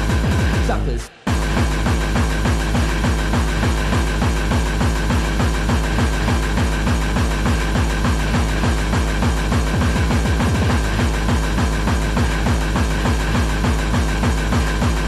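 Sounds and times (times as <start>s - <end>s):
fast kick drum: 0.0s - 15.0s
hardcore dance music: 0.0s - 15.0s.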